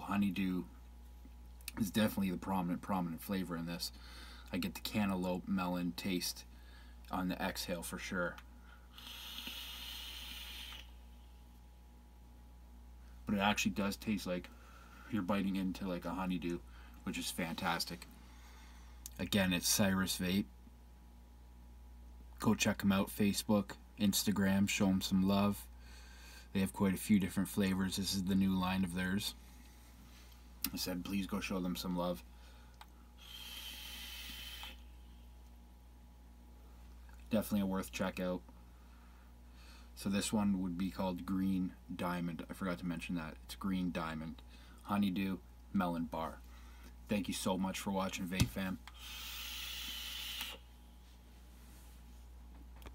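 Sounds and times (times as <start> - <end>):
vape draw hiss: 8.9 - 11.0, 33.2 - 34.9, 49.0 - 50.6
thin high whistle: 9.0 - 10.9, 33.2 - 34.9, 49.0 - 50.6.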